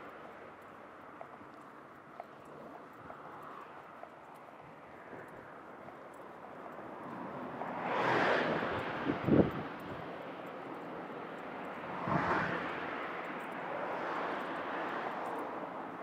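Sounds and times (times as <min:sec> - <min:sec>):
vehicles passing by: 0:00.0 - 0:16.0
wind rumble on microphone: 0:07.2 - 0:10.5, 0:11.8 - 0:12.9.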